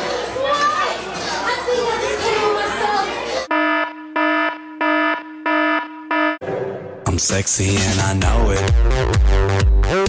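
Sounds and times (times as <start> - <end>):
party noise: 0.0 - 3.8
buzzy electronic alarm beeps: 3.5 - 6.4.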